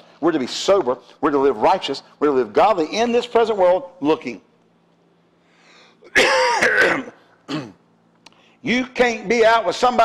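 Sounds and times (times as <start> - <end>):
man coughing: 6.1 - 7.9.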